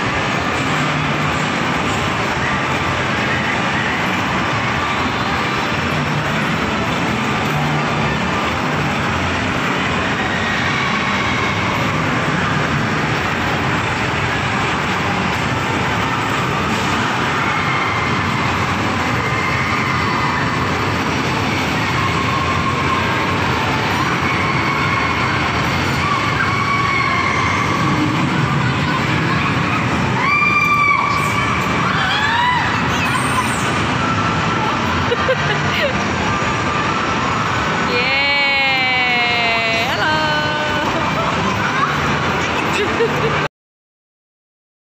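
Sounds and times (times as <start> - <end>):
amusement park din: 0.0 - 43.5
roller coaster rolling on track: 0.0 - 43.5.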